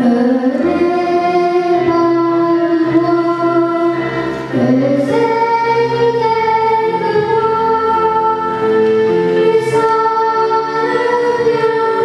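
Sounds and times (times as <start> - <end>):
child singing into microphone: 0.0 - 12.0.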